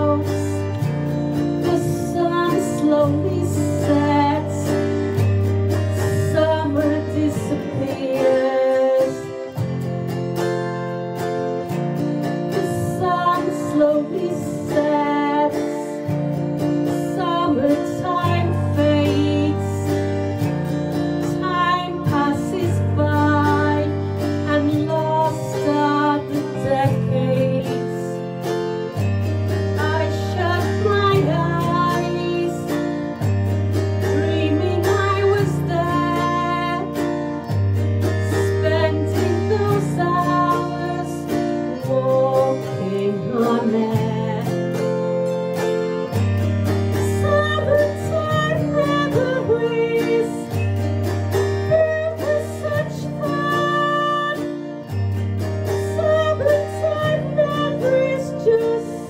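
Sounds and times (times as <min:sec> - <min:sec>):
woman singing: 0:00.0 - 0:10.8, 0:12.0 - 0:28.6, 0:29.7 - 0:33.3, 0:33.9 - 0:46.1, 0:46.8 - 0:55.0, 0:55.6 - 0:59.0
autoharp strummed chords: 0:00.0 - 0:59.0.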